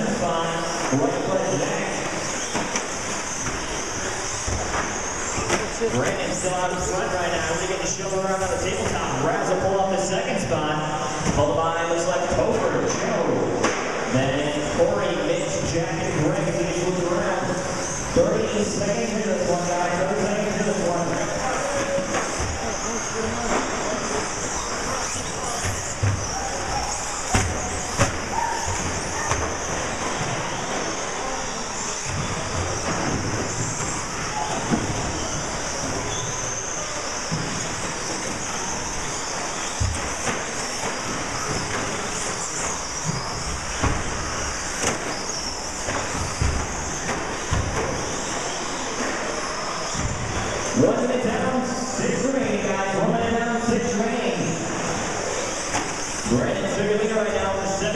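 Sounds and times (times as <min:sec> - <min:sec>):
rc trucks whining: 0:00.0 - 0:13.0, 0:13.6 - 0:57.9.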